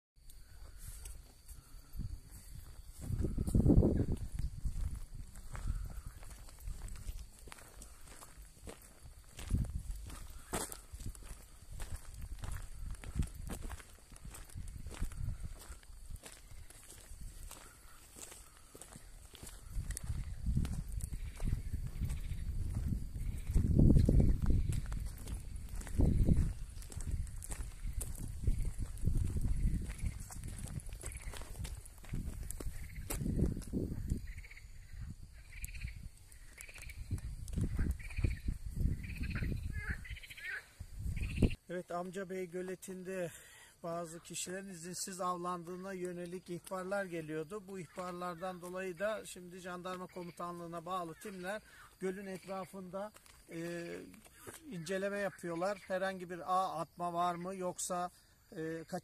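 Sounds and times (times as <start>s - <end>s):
footsteps on dirt path: 0.3s - 56.5s.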